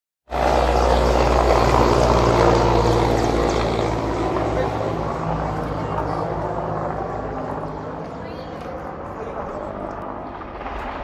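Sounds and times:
helicopter passing low overhead: 0:00.3 - 0:11.0.

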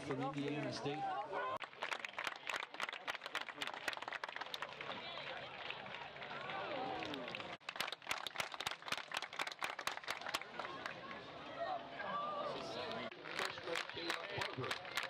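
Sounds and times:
people clapping: 0:00.0 - 0:11.5, 0:12.8 - 0:15.0.

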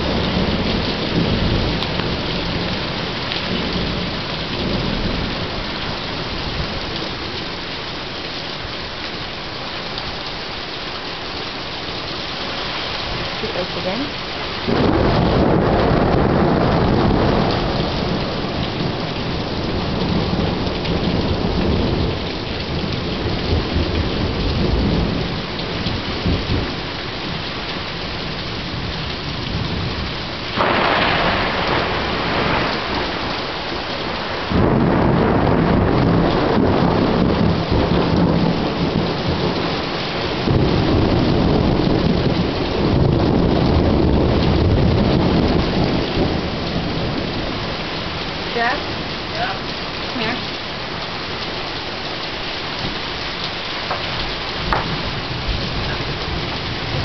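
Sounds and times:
heavy rain: 0:00.0 - 0:57.0
sharp thunderclap: 0:14.6 - 0:26.8, 0:28.7 - 0:47.6, 0:53.8 - 0:57.0
thunder rolling: 0:14.6 - 0:27.4, 0:28.2 - 0:50.4, 0:53.8 - 0:57.0.

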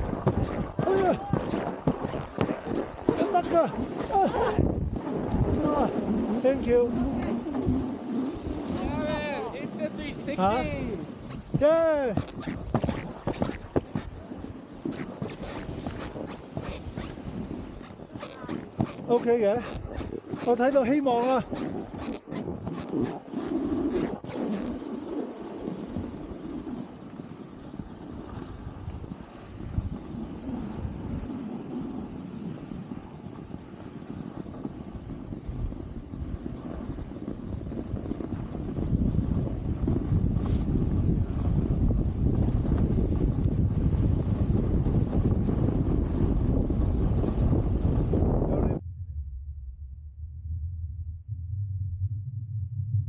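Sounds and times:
wind buffeting microphone: 0:00.0 - 0:49.8.

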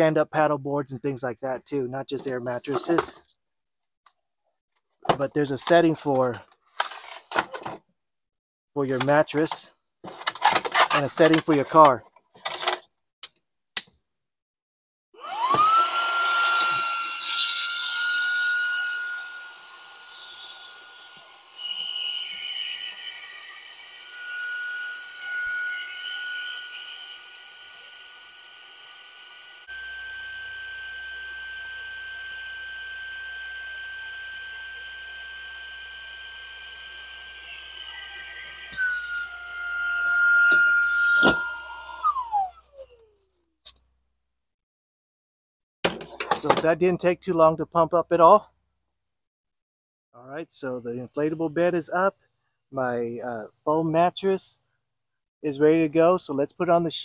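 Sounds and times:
air compressor motor whining: 0:15.2 - 0:16.9, 0:29.6 - 0:42.9.

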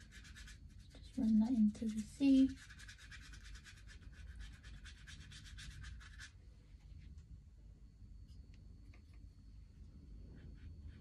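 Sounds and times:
paintbrush scrubbing on paper: 0:00.0 - 0:06.4, 0:10.2 - 0:11.0.

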